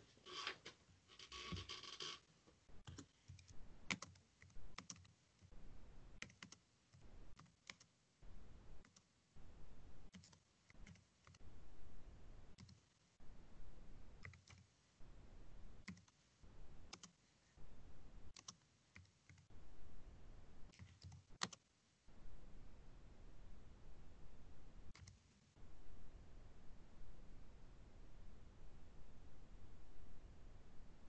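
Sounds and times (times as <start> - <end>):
faint typing on keyboard: 0.0 - 5.6, 6.2 - 8.0, 8.8 - 9.1, 10.1 - 11.5, 12.5 - 13.2, 14.1 - 14.8, 15.8 - 17.6, 18.3 - 19.6, 20.7 - 21.7, 24.9 - 25.5.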